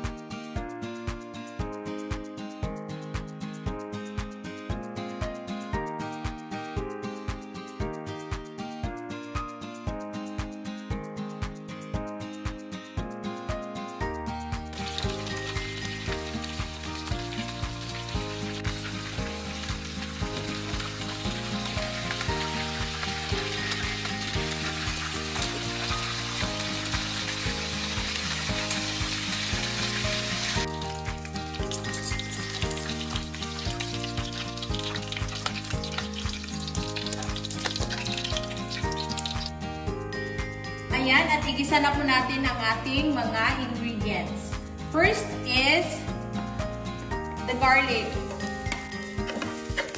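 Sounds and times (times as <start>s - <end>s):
background music: 0.0s - 49.9s
fish frying in hot oil: 14.6s - 39.6s, 48.2s - 49.9s.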